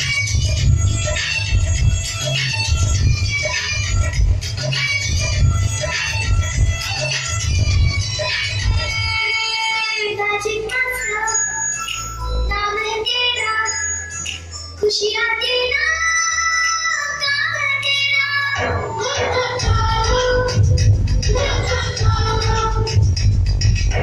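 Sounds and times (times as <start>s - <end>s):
heavy beat: 0.0s - 9.2s, 18.6s - 24.0s
song with sung vocal: 3.4s - 24.0s.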